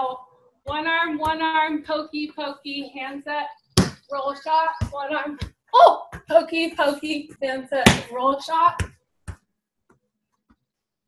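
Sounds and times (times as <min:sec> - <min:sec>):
hand striking volleyball: 0:00.7 - 0:01.5, 0:03.8 - 0:04.1, 0:04.8 - 0:10.6.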